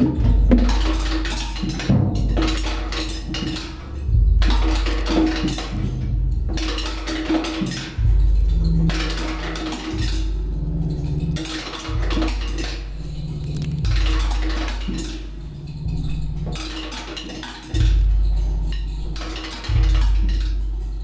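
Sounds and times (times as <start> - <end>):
low sustained tones: 0.0 - 16.9, 17.7 - 21.0.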